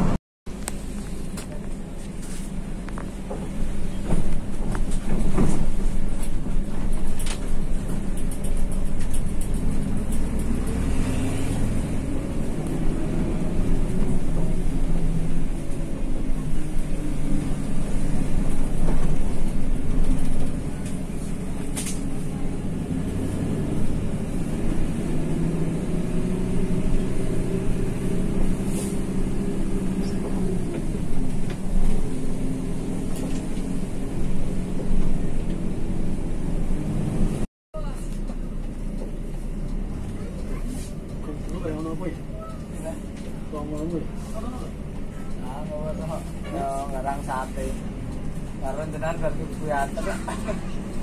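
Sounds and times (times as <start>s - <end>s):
bus engine running: 0.0s - 51.0s.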